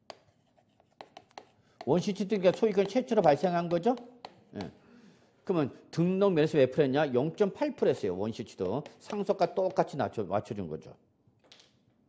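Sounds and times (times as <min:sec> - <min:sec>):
chalk tapping and scratching: 0:00.0 - 0:04.7, 0:08.5 - 0:10.0.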